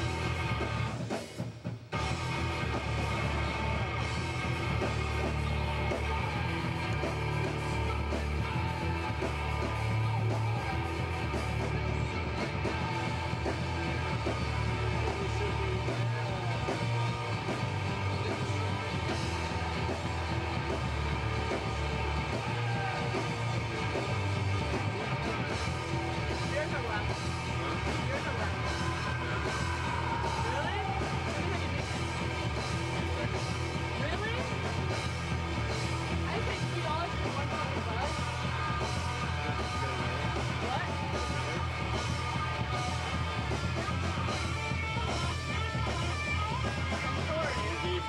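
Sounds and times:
loud electric guitar: 0:00.0 - 0:01.3, 0:02.0 - 0:48.0
heavy band backing: 0:00.0 - 0:48.0.

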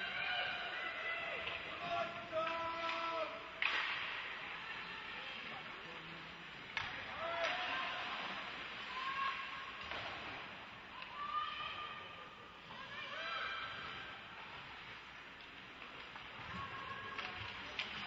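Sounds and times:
sharp hockey cracks: 0:02.4 - 0:04.4.

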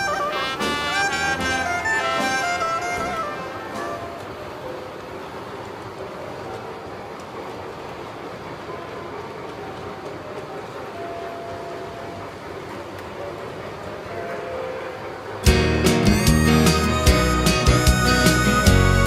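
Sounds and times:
model train running on track: 0:00.0 - 0:19.0
loud background music: 0:15.5 - 0:19.0.

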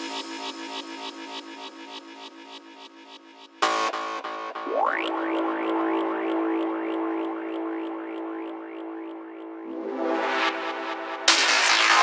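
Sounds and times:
held synth drone: 0:03.6 - 0:12.0
rising synth sweeps: 0:04.7 - 0:12.0.

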